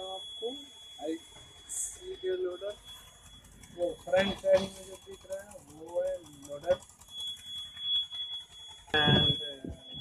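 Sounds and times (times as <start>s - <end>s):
high-pitched whine: 0.0s - 10.0s
low engine rumble: 0.0s - 10.0s.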